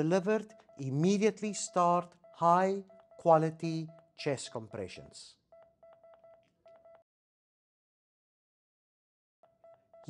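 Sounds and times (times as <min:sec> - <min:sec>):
faint electronic beeps: 0:00.0 - 0:07.0.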